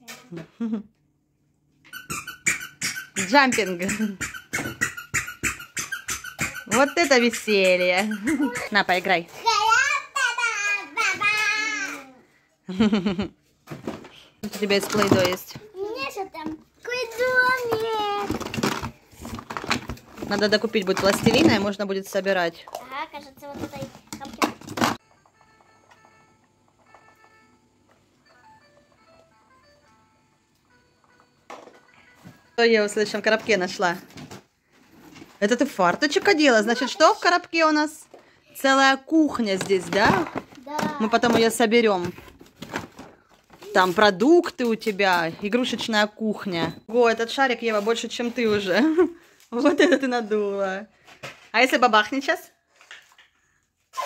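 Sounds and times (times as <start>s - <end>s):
foam pogo jumper squeaking: 1.9s - 9.0s
toy electronic keyboard notes: 25.0s - 32.6s.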